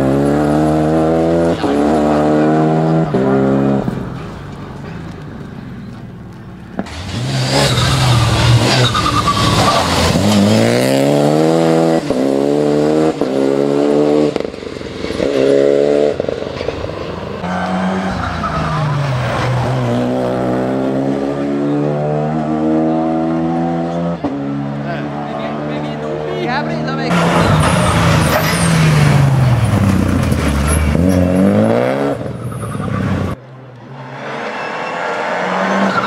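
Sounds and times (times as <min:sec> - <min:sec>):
car engine revving at full throttle: 0:00.0 - 0:04.0, 0:06.8 - 0:16.4, 0:19.6 - 0:32.4.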